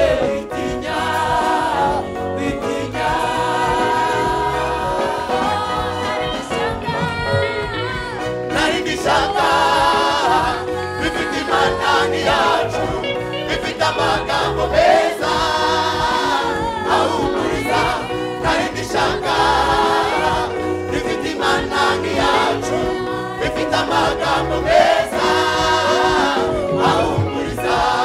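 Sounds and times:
live band accompaniment: 0.0s - 28.0s
women's choir singing: 0.0s - 28.0s.

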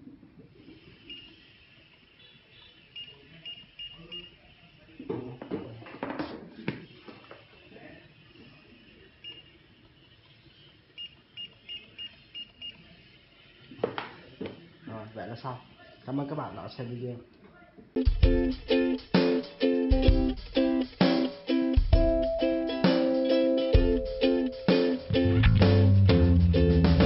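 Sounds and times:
barcode scanner beeps: 1.1s - 1.5s, 2.2s - 4.4s, 9.2s - 9.6s, 11.0s - 12.9s
handling noise of book and scanner: 6.5s - 16.5s.

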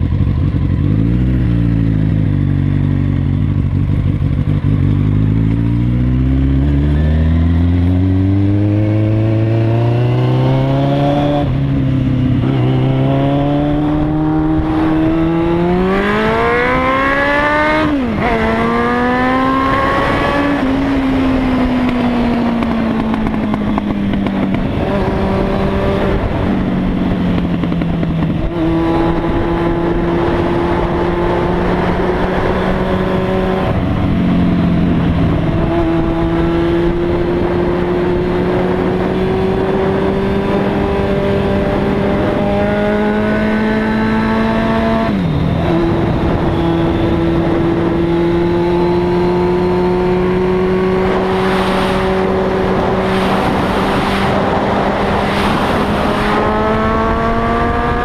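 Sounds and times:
motorcycle engine accelerating: 0.0s - 58.0s
wind rush on helmet: 0.0s - 58.0s.

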